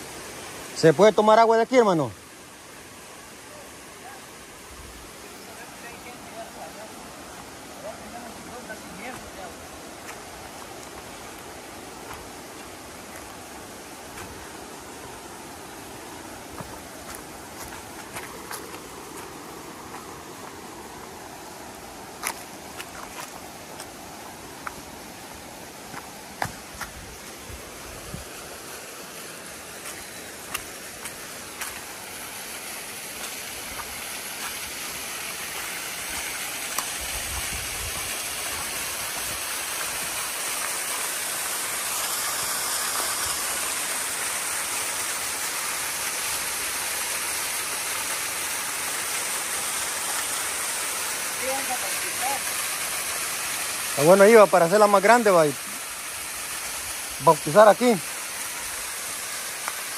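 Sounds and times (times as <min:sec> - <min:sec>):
small waterfall splashing: 0:00.0 - 0:59.9.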